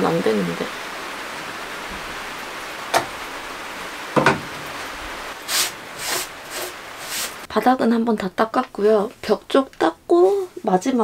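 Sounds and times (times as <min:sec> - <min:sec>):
rain hissing: 0:00.0 - 0:07.5
knock: 0:04.2 - 0:04.5
cloth wiping metal floor: 0:05.4 - 0:07.5.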